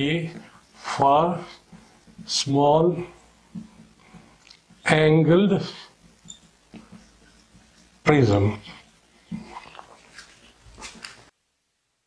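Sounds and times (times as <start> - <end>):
faint rustling: 0.0 - 11.3.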